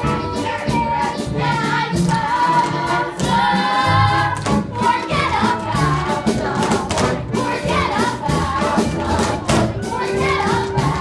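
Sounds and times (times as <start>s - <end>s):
chorus singing a show tune: 0.0s - 11.0s
musical accompaniment: 0.0s - 11.0s.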